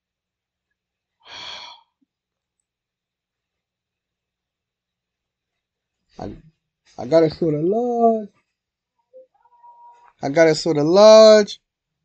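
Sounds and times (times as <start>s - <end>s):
person sighing: 1.2s - 1.9s.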